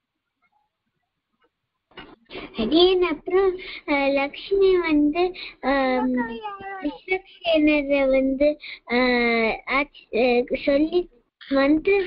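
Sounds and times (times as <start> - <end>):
child chanting: 4.4 - 8.6.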